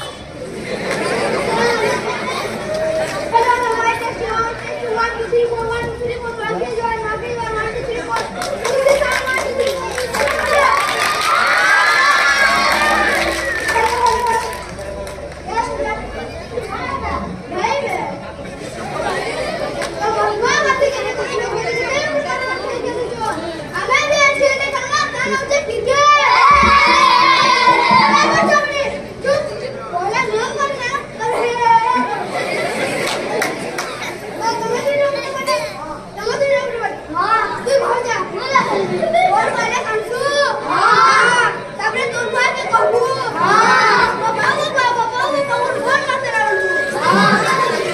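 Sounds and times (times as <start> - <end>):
children calling out: 0.0 - 18.1, 19.0 - 47.9
crowd chatter: 0.0 - 47.9
boys speaking loudly: 1.2 - 47.9.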